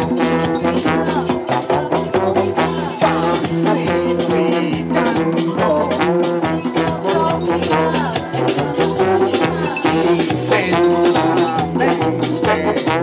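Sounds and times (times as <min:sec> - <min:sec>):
live band playing cumbia: 0:00.0 - 0:13.0.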